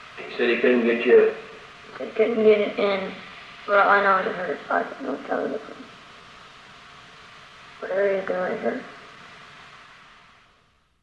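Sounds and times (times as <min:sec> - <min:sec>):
tape hiss: 0:00.0 - 0:11.0
voice: 0:00.2 - 0:05.9, 0:07.8 - 0:08.9.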